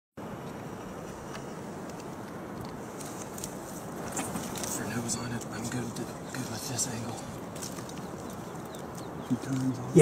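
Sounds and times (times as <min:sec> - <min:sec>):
outdoor background hiss: 0:00.2 - 0:10.0.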